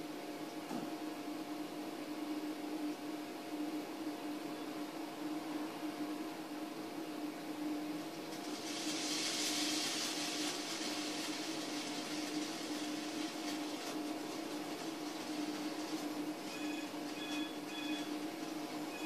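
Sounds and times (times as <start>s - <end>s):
fizzing hiss of foaming soda: 8.0s - 16.5s.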